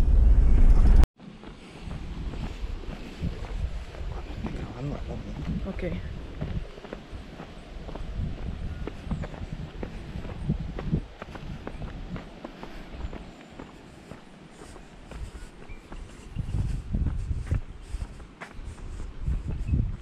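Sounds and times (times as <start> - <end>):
wind rumbling on microphone: 0.0 - 20.0
footsteps on paved road: 1.2 - 20.0.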